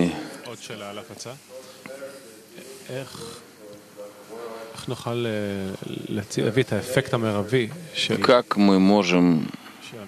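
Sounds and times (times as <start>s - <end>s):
man speaking: 0.0s - 10.0s.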